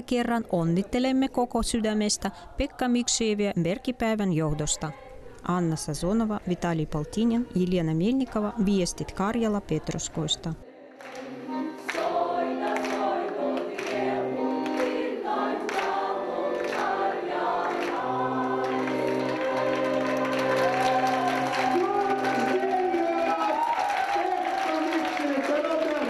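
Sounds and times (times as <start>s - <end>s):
group singing: 8.3s - 24.5s
people clapping: 11.0s - 26.0s.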